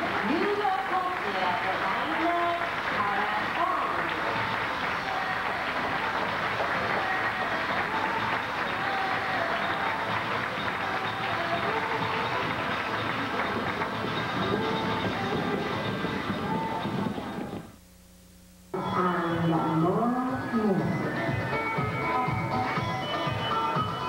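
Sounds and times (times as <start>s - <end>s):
crowd clapping: 0.0s - 17.7s
music playing: 0.0s - 17.8s, 18.7s - 24.0s.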